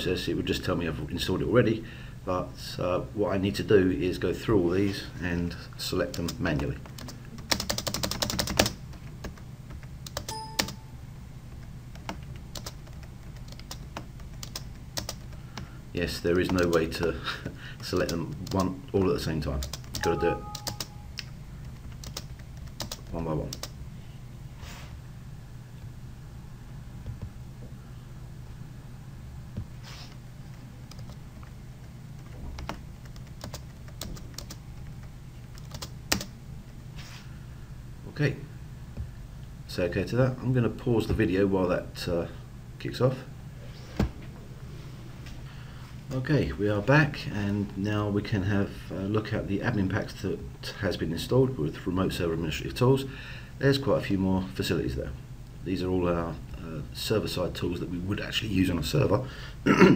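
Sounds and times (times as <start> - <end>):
steady low hum: 0.0 - 59.9
brief pitched tone: 10.3 - 11.0, 20.0 - 21.2
computer mouse clicks: 30.9 - 31.2.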